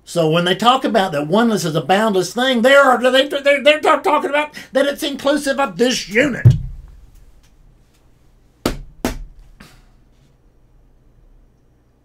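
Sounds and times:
short thumps: 6.1s - 7.5s.

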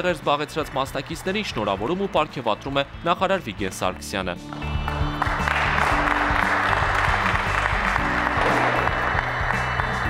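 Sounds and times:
audience applauding: 0.0s - 3.6s, 4.5s - 10.0s
background music: 0.0s - 10.0s.

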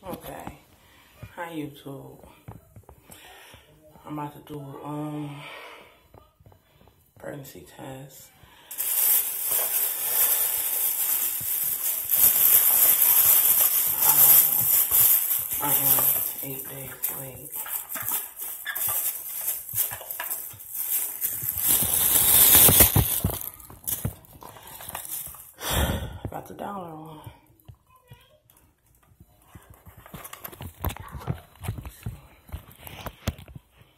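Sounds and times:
plastic bag crinkling: 8.7s - 25.6s.

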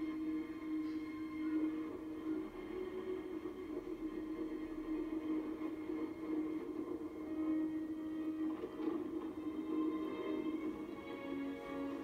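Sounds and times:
calm ambient score: 0.0s - 12.0s.

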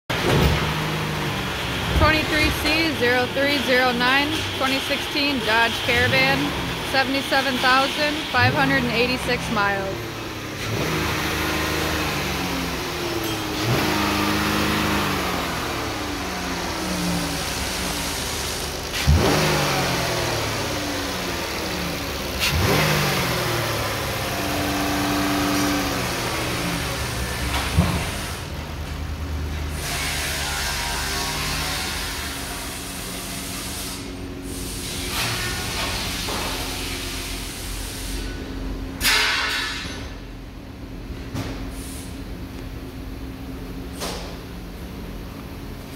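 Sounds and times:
car engine revving: 0.1s - 40.7s.

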